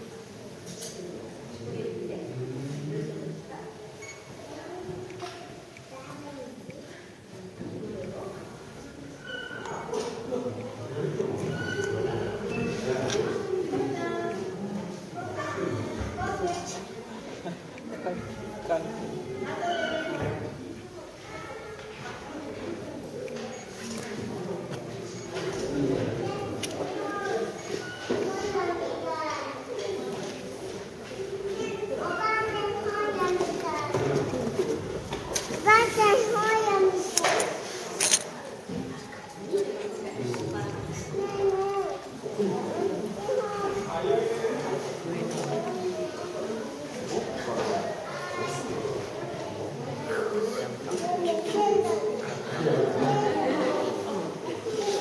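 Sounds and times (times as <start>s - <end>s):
indistinct chatter: 0.0s - 55.0s
children's voices talking and calling: 3.7s - 55.0s.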